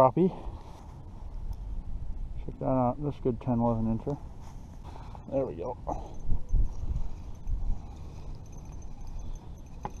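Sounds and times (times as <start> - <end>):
wind buffeting microphone: 5.7 - 10.0.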